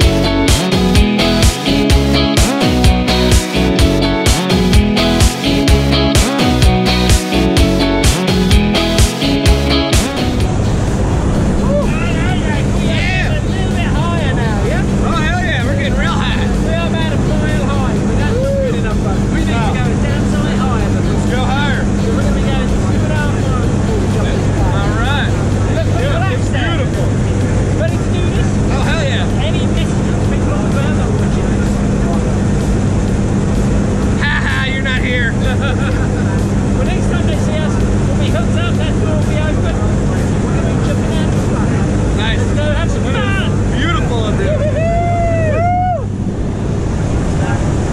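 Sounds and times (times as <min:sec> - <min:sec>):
propeller plane engine droning: 0:08.2 - 0:47.9
voices talking: 0:11.5 - 0:32.3.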